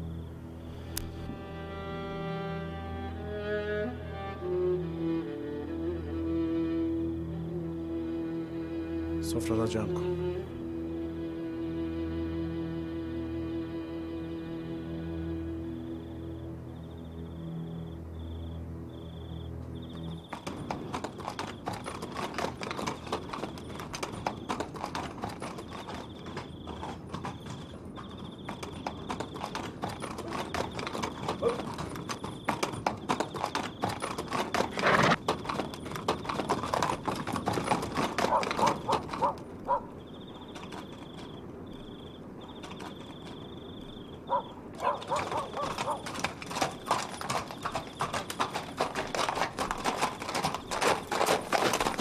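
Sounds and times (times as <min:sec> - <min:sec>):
horse hooves clip-clopping: 0:19.3 - 0:52.0.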